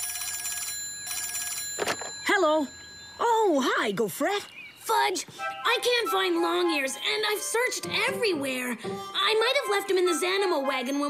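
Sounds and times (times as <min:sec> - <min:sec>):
cartoon telephone ringing: 0:00.0 - 0:03.7.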